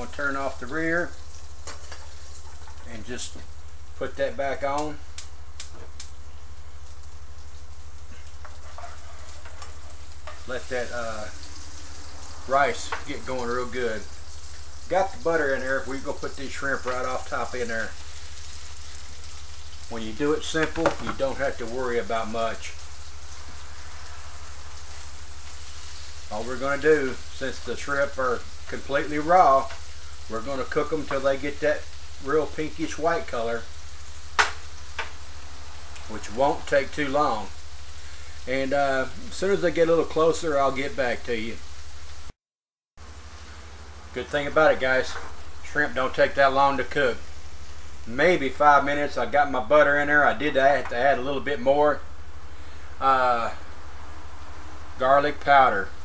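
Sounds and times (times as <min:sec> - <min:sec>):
butter sizzling in a skillet: 0:00.0 - 0:42.4, 0:43.0 - 0:56.0
low hum: 0:43.0 - 0:46.0.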